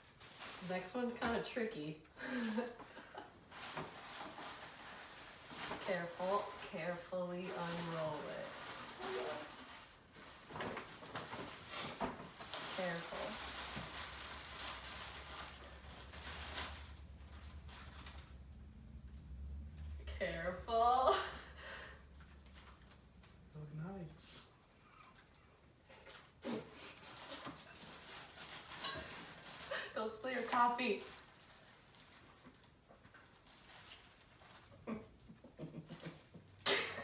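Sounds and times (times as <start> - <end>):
paper rustling: 3.5 - 18.6
paper crinkling: 3.5 - 19.0, 25.9 - 34.8.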